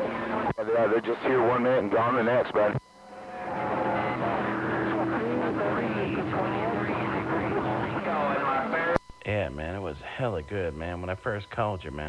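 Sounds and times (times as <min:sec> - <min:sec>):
radio static hiss: 0:00.0 - 0:12.0
weak voice over radio: 0:00.6 - 0:02.8, 0:04.2 - 0:09.0.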